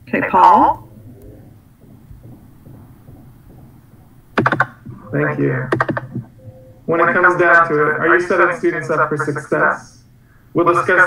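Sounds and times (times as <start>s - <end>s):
keyboard keys clicking: 4.4s - 5.0s, 5.7s - 6.3s.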